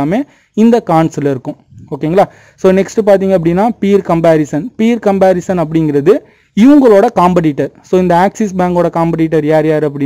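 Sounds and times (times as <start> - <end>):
man narrating: 0.0 - 10.0.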